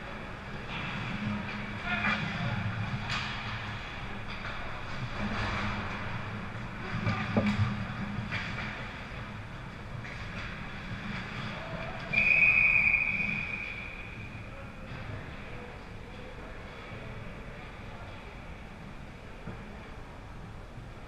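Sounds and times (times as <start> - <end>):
referee's whistle blast: 12.1 - 14.2.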